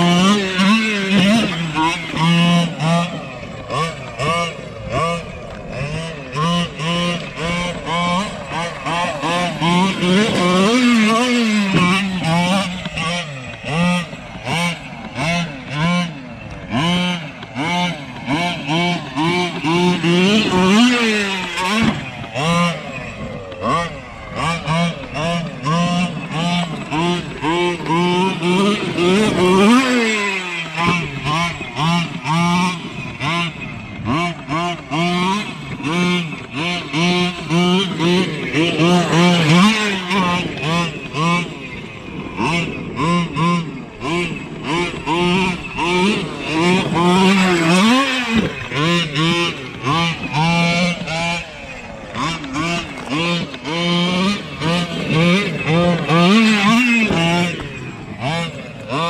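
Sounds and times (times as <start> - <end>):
small two-stroke engine revving: 0.0 - 59.0.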